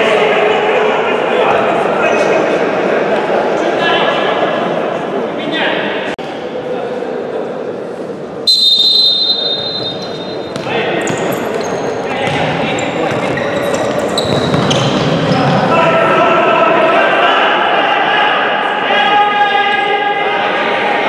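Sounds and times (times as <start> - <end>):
referee's whistle: 8.4 - 10.6
ball bouncing on hard floor: 9.7 - 15.6.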